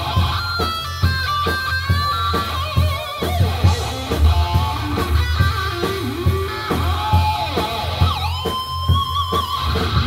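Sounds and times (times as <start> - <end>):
bass guitar: 0.0 - 10.0
drums: 0.0 - 10.0
electric lead guitar: 0.0 - 10.0.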